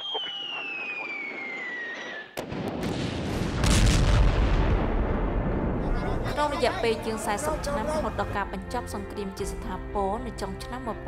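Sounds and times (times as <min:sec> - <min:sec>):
falling bomb whistle: 0:00.0 - 0:02.5
sharp blast: 0:00.0 - 0:06.2
heavy explosions with deep rumble: 0:02.4 - 0:06.3.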